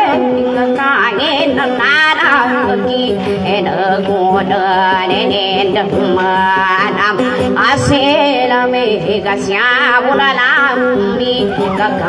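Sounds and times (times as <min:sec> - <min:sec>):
acoustic guitar: 0:00.0 - 0:12.0
person singing with vibrato: 0:00.0 - 0:12.0.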